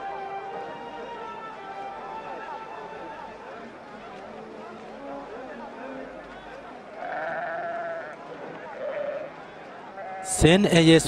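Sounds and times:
sheep bleating: 7.0s - 9.3s, 9.9s - 10.4s.

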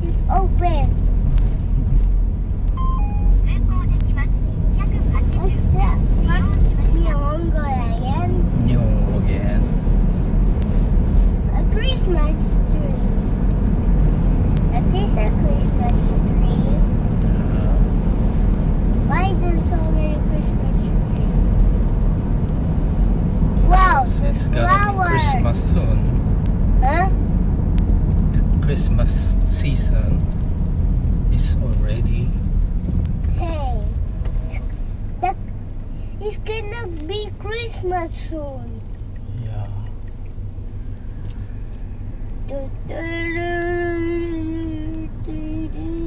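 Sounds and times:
car driving rumble in cabin: 0.0s - 46.0s
two-note beep: 2.8s - 3.5s.

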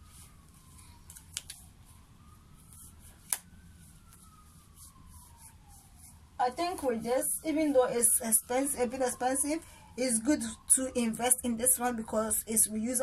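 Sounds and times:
faint siren wailing: 0.0s - 13.0s.

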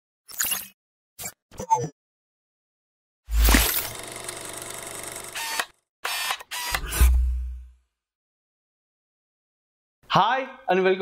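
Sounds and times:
camera shutter click and whir: 3.3s - 7.2s
film projector ticking rattle: 3.9s - 5.6s.

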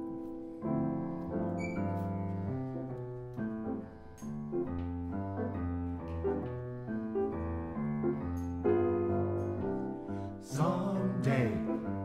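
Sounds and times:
grand piano playing slow chords: 0.0s - 12.0s.

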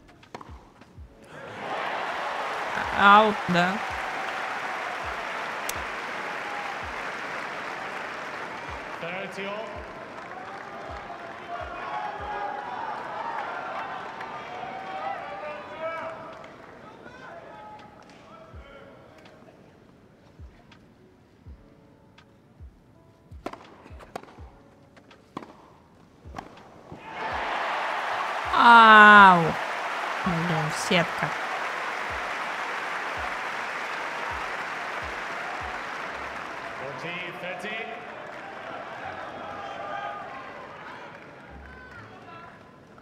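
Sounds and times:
racket hitting ball: 0.2s - 0.9s, 23.4s - 25.7s, 26.3s - 27.0s
spectator shouting: 1.3s - 4.1s, 27.0s - 31.6s
crowd applause and cheering: 1.3s - 17.4s, 27.0s - 42.7s.

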